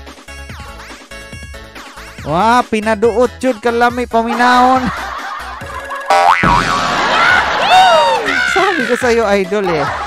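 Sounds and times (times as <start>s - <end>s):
cartoon boing sound effect: 6.1s - 7.5s.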